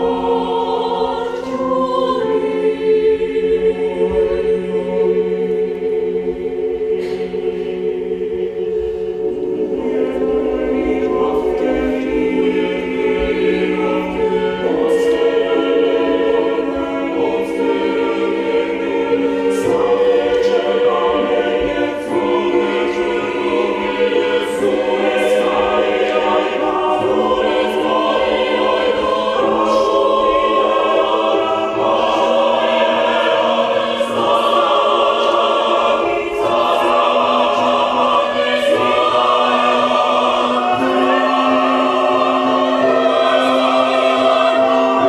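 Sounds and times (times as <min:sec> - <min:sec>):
mixed choir singing: 0:00.0 - 0:45.0
piano accompaniment: 0:00.0 - 0:45.0.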